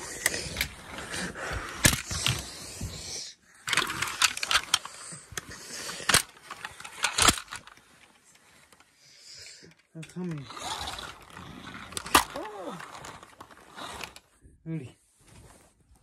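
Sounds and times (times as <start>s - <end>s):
toy cars clicking and knocking: 0.0s - 14.3s
rustling on bedding: 15.0s - 16.0s.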